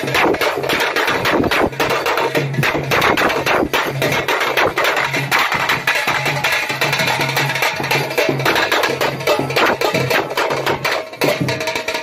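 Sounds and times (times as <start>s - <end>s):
fast dense drum beat: 0.0s - 12.0s.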